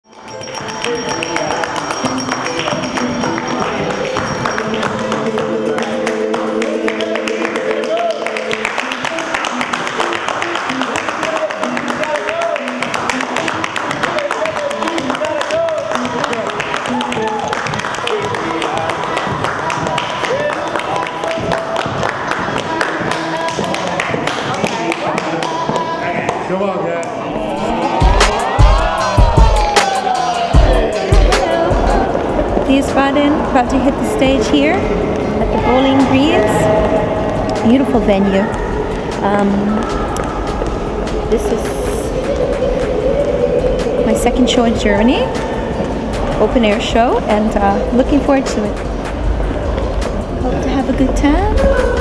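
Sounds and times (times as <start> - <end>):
held chords: 0.0 - 23.7, 27.5 - 52.0
music with percussive beat: 0.0 - 24.9, 27.6 - 52.0
voice over music: 27.4 - 48.8.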